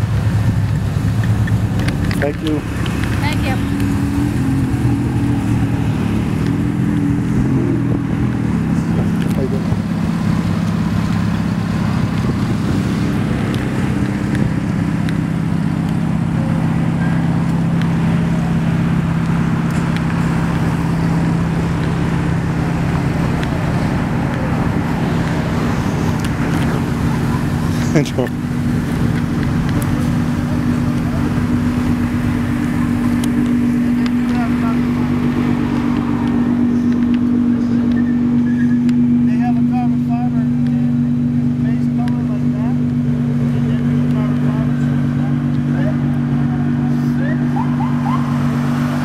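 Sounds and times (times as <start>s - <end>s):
cars driving past: 0.0s - 49.0s.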